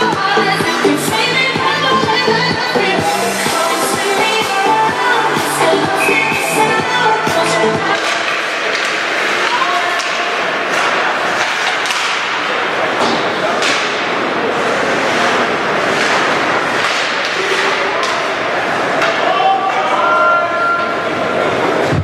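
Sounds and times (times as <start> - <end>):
hubbub of crowd and players: 0.0 - 22.0
sticks and puck knocking boards: 7.8 - 14.3, 15.9 - 18.3.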